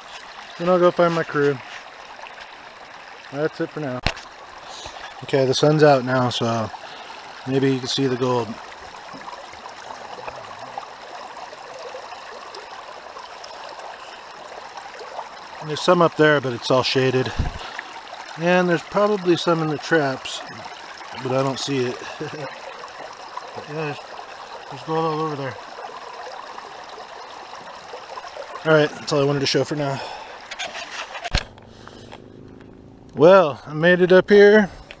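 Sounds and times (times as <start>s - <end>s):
river water running over rocks: 0.0s - 33.9s.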